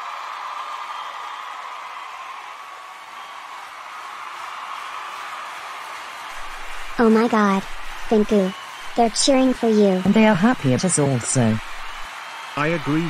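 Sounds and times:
large crowd cheering: 0:00.0 - 0:13.0.

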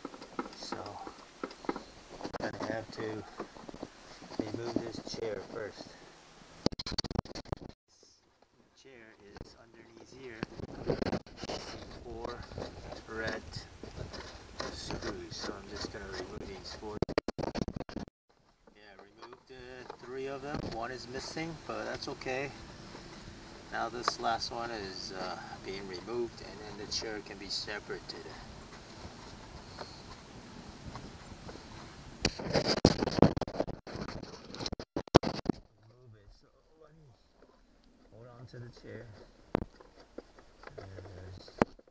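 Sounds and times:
man talking indistinctly: 0:23.7 - 0:28.4.

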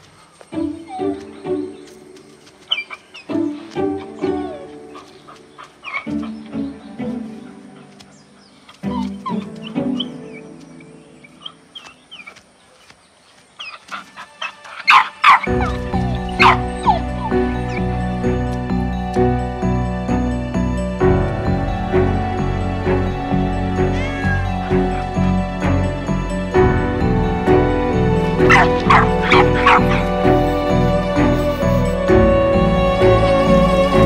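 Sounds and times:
soft background music: 0:00.0 - 0:34.0.

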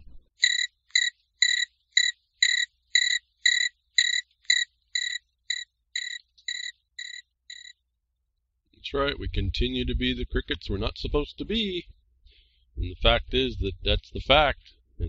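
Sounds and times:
cricket chirping: 0:00.4 - 0:07.7.

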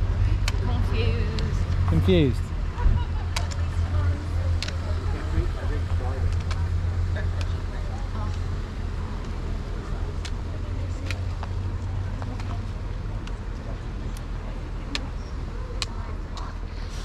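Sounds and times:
faint background voices: 0:00.0 - 0:17.0
trekking poles clicking on tarmac: 0:06.2 - 0:07.6.

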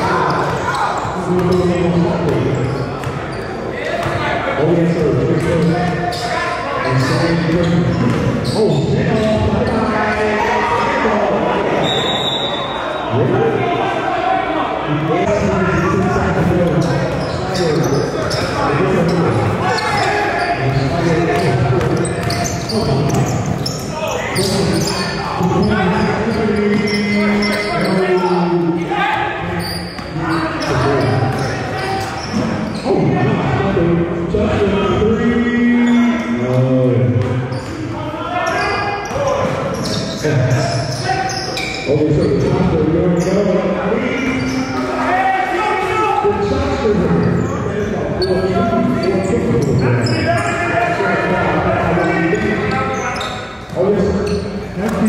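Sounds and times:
people talking: 0:00.0 - 0:55.0.

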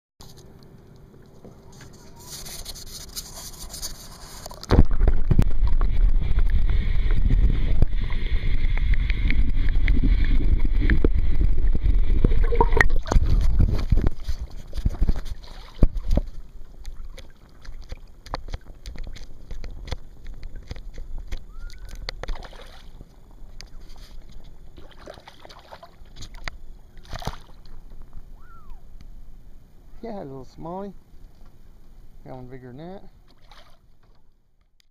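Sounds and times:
water sloshing and gurgling: 0:00.3 - 0:28.4, 0:33.1 - 0:34.6.

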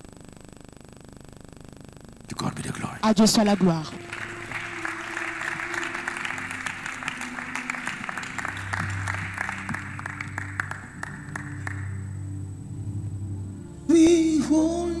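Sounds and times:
keyboard sustained chords: 0:02.4 - 0:15.0
congregation applauding: 0:02.8 - 0:12.4.

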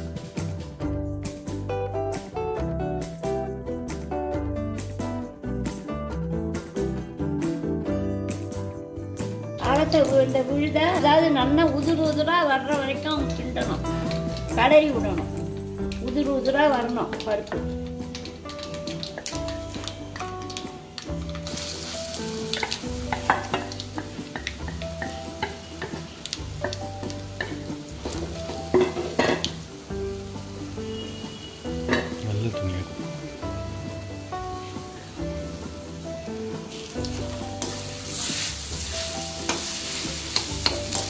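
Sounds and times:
quiet instrumental melody: 0:00.0 - 0:41.0
paste sizzling in hot oil: 0:09.8 - 0:41.0.

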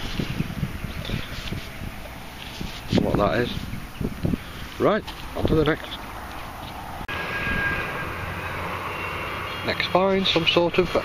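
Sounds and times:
distant engine drone: 0:03.6 - 0:11.0.

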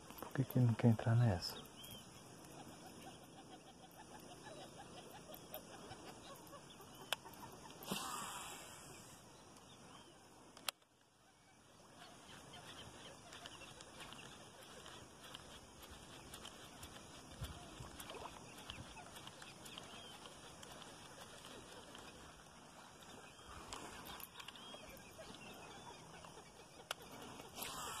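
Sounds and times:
faint animal calls: 0:00.4 - 0:09.3, 0:11.1 - 0:28.0.

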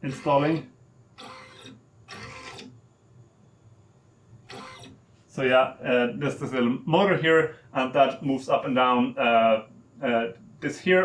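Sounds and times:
small motor running: 0:00.0 - 0:00.6, 0:01.2 - 0:02.8, 0:04.5 - 0:05.0.

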